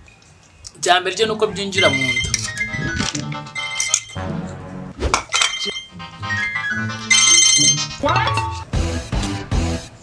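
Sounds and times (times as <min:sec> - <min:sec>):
background music: 0:01.1 - 0:10.0
mobile phone ringtone: 0:01.8 - 0:04.3, 0:05.6 - 0:08.6.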